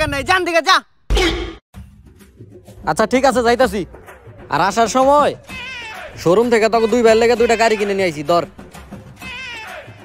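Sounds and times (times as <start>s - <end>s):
background music: 1.2s - 10.0s.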